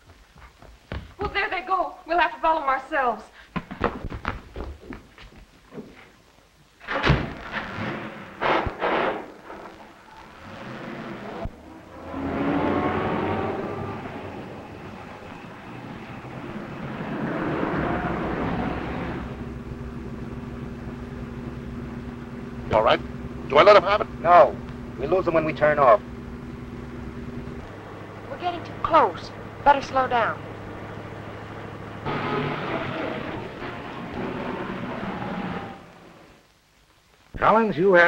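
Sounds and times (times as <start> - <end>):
car engine accelerating: 9.4 - 36.4.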